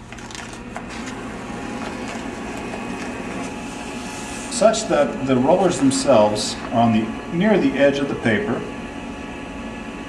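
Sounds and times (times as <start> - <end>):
steady low hum: 0.0 - 10.0
paper sliding into cutter: 0.1 - 4.7.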